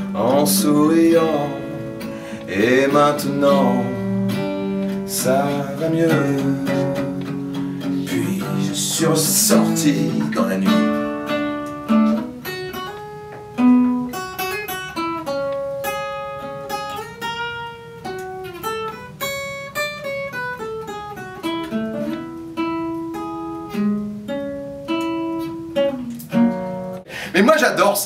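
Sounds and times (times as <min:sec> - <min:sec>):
solo acoustic guitar: 0:00.0 - 0:27.1.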